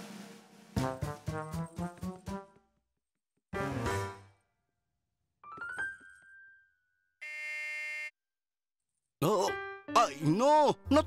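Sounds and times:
doorbell buzzer: 7.2s - 8.2s.

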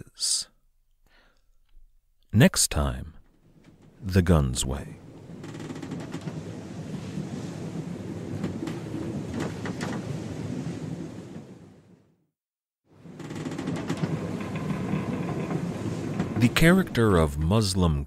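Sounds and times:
storm and surf sound bed: 0.0s - 0.5s, 2.4s - 18.0s.

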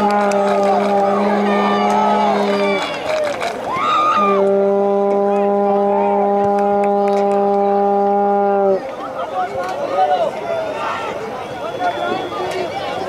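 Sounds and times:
horn long low note: 0.0s - 3.1s, 4.1s - 8.9s.

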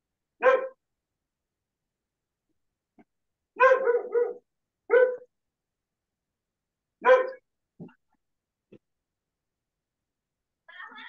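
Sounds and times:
dog barking: 0.4s - 0.8s, 3.6s - 5.3s, 7.0s - 7.4s.

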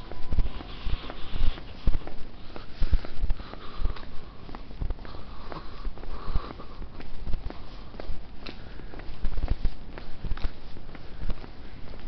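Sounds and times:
running footsteps thumping: 0.0s - 12.0s
hard breathing: 0.5s - 12.0s.

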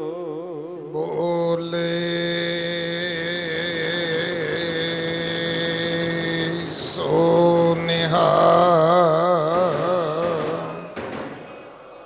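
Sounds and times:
person singing with vibrato: 0.0s - 11.0s.

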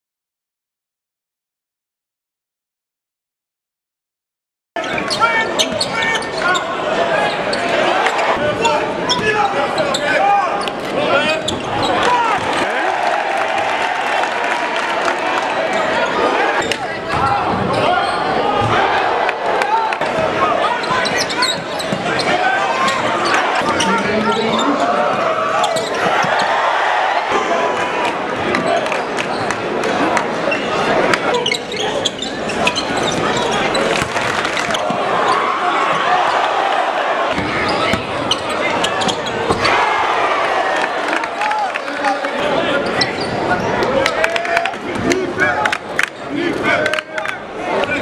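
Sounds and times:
crowd talking and shouting: 4.8s - 48.0s.

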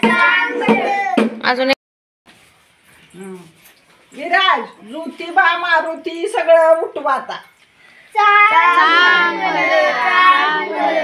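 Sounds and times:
children singing together: 0.0s - 1.2s, 8.2s - 11.0s
sharp percussive strikes: 0.0s - 1.7s.

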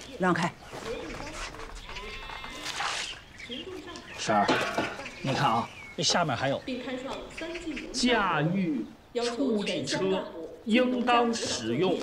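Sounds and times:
farm animal bleating: 1.7s - 2.8s.

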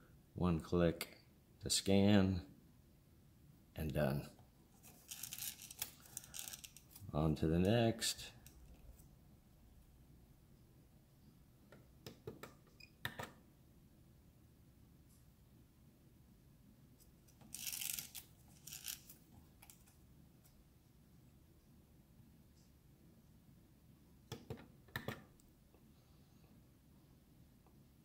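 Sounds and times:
film strip rustling in plastic holder: 4.8s - 7.1s, 17.3s - 20.0s.

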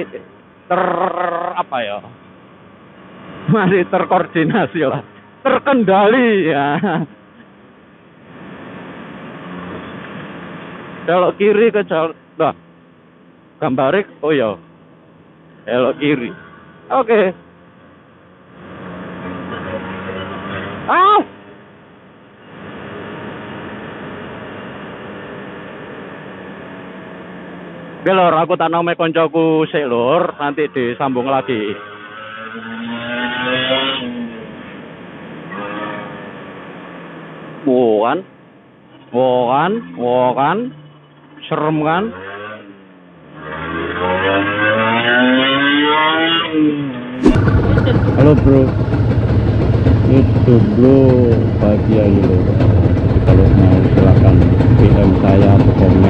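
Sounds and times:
wind and road rush: 2.1s - 6.4s, 7.1s - 11.6s, 16.4s - 28.0s, 42.3s - 56.0s
two-stroke motorcycle engine: 47.2s - 56.0s.

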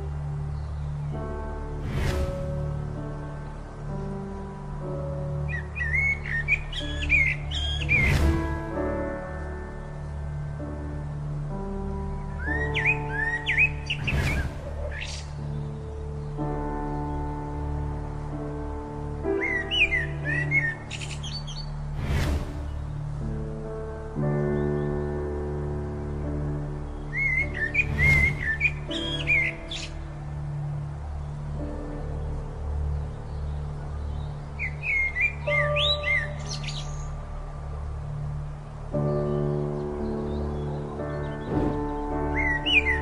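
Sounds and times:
background music of held chords: 0.0s - 43.0s
songbird chirping and whistling: 5.5s - 8.5s, 12.3s - 15.8s, 19.4s - 23.1s, 27.1s - 30.0s, 41.1s - 43.0s.

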